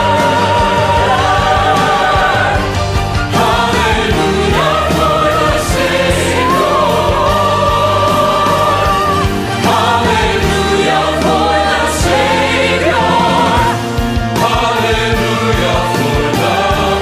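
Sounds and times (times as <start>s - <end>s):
choir singing: 0.0s - 17.0s
instrumental accompaniment: 0.0s - 17.0s.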